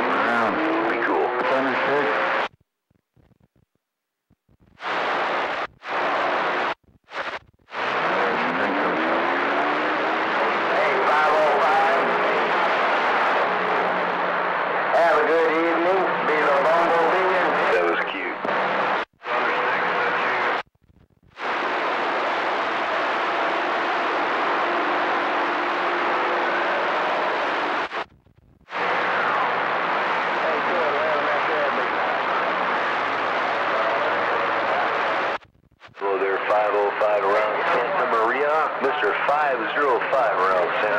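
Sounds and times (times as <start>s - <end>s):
garbled radio voices: 0.0s - 2.5s, 7.2s - 13.5s, 14.6s - 20.6s, 36.0s - 40.9s
radio static: 0.0s - 3.7s, 4.4s - 40.9s.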